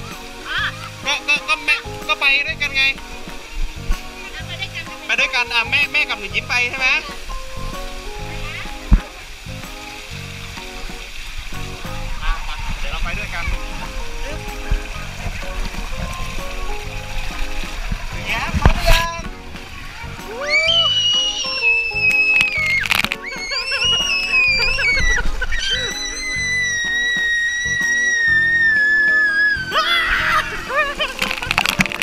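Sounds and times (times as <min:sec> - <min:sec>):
background music: 0:00.0 - 0:32.0
water rushing down a slide: 0:00.0 - 0:32.0
splash into pool: 0:06.8 - 0:32.0
high-pitched squeals: 0:20.6 - 0:30.4.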